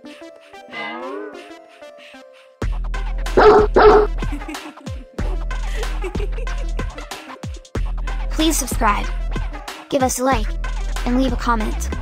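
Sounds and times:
electronic dance music: 3.4s - 4.1s
dog barks: 3.4s - 4.2s.

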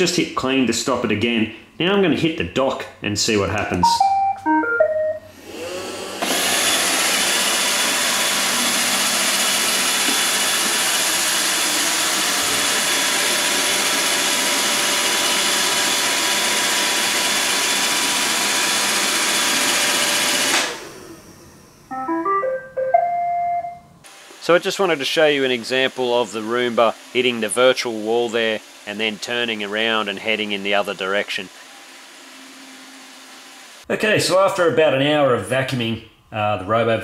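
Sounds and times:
robot vacuum beep tune: 3.8s - 5.3s, 21.9s - 23.9s
robot vacuum motor and brushes: 5.3s - 17.3s, 24.1s - 33.8s.

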